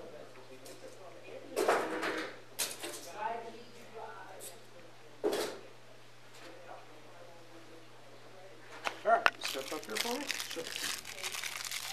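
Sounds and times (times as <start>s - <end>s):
low electrical hum: 0.0s - 11.9s.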